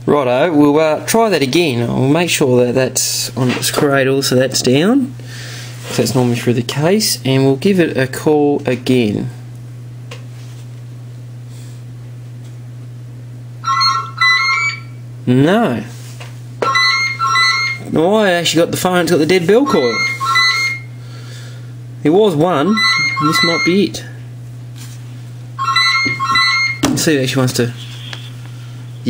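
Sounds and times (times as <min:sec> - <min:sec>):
steady low hum: 0:00.0 - 0:29.0
mobile phone electronic tone: 0:13.6 - 0:15.0, 0:16.6 - 0:17.9, 0:19.6 - 0:21.0, 0:22.6 - 0:24.0, 0:25.6 - 0:26.9
telephone bell ringing: 0:13.6 - 0:15.0, 0:16.6 - 0:17.9, 0:19.6 - 0:21.0, 0:22.7 - 0:23.9, 0:25.6 - 0:26.8.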